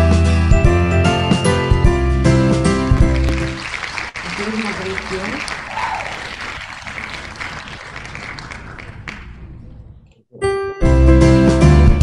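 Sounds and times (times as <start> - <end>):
crowd applause: 2.8 - 9.6
voices: 4.2 - 6.4.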